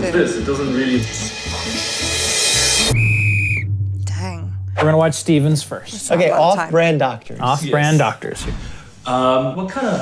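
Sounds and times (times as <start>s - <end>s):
music: 0.0s - 5.8s
shrill whistle blast: 2.6s - 3.8s.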